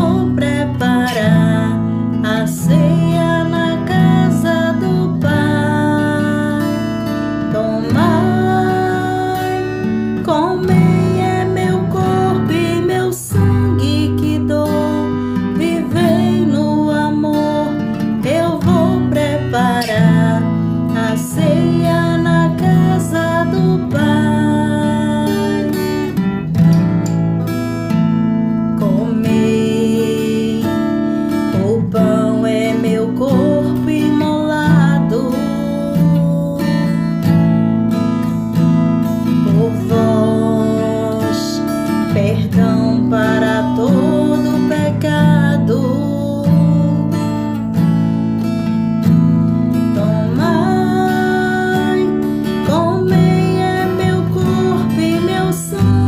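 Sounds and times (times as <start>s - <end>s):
strummed acoustic guitar: 0.0s - 56.0s.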